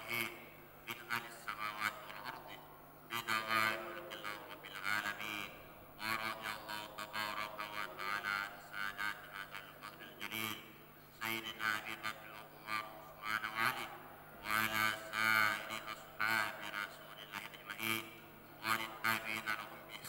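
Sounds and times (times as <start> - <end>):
man chanting over loudspeakers: 0.0 - 20.0.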